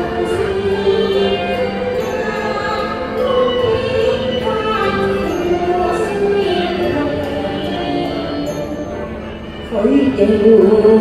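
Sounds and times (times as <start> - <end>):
woman singing opera: 0.0 - 9.0, 9.6 - 11.0
instrumental accompaniment: 0.0 - 11.0.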